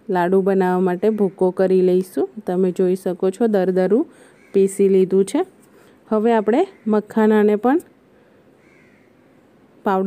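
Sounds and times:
distant crow cawing: 0:04.2 - 0:04.8, 0:06.7 - 0:07.2, 0:08.6 - 0:09.4.

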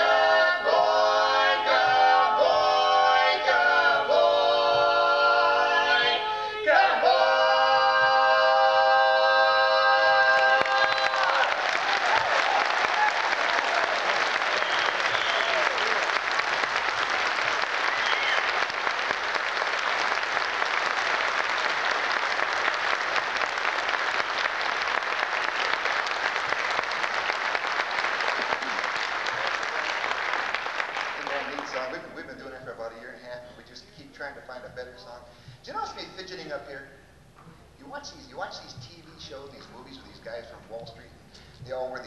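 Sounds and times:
audience applauding: 0:10.3 - 0:32.1.

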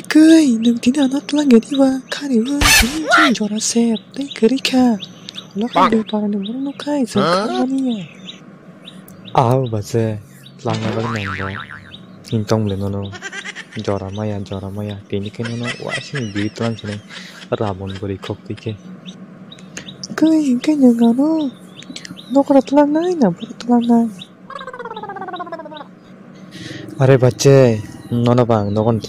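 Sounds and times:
cartoon character voice speaking: 0:01.6 - 0:03.5, 0:05.6 - 0:06.3, 0:07.1 - 0:08.1
voice with falling pitch: 0:05.6 - 0:06.2, 0:10.6 - 0:12.5.

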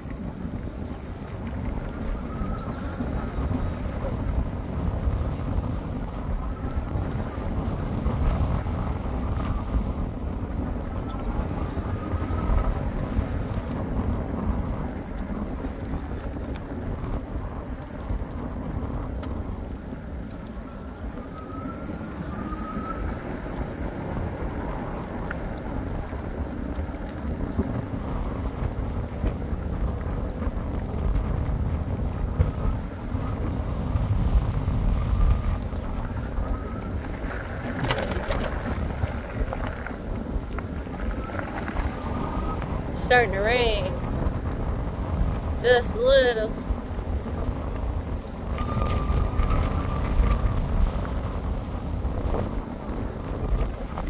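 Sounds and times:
tyre noise on asphalt: 0:00.0 - 0:43.1, 0:46.6 - 0:54.0
wind buffeting microphone: 0:00.0 - 0:54.0.

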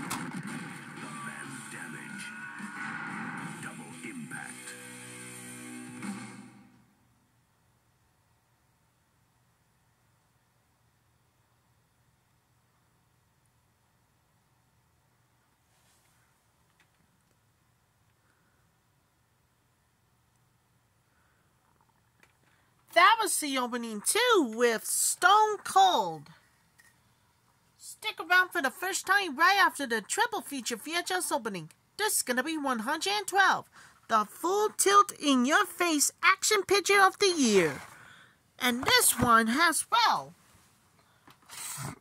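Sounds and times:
man's voice: 0:01.0 - 0:02.8, 0:03.4 - 0:04.8.

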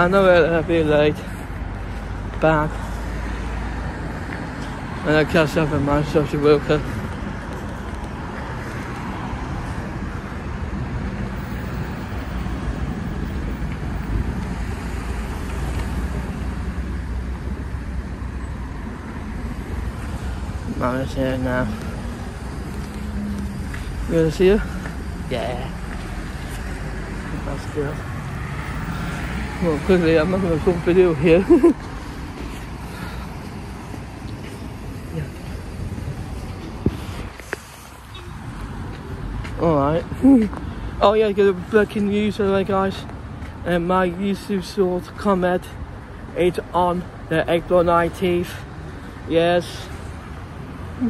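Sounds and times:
street low rumble: 0:00.0 - 0:51.0.

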